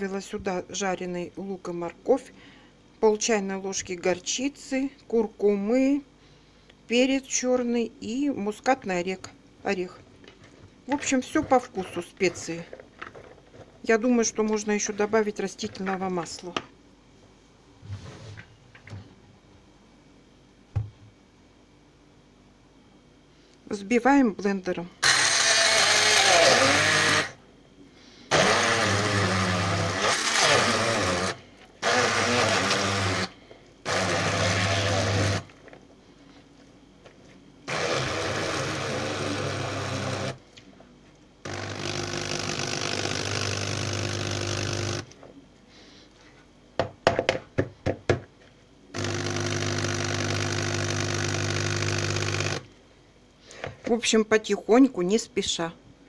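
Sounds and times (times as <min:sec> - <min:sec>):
hand blender running: 0:25.0 - 0:27.4, 0:28.3 - 0:33.3, 0:33.9 - 0:35.5, 0:37.7 - 0:40.4, 0:41.5 - 0:45.1, 0:49.0 - 0:52.7.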